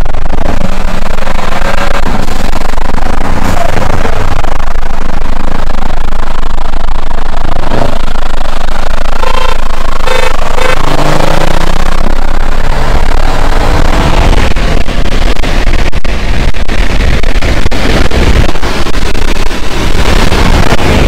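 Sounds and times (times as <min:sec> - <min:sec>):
car engine rising in pitch: 0:00.0 - 0:21.0
road and wind noise rumble: 0:00.0 - 0:21.0.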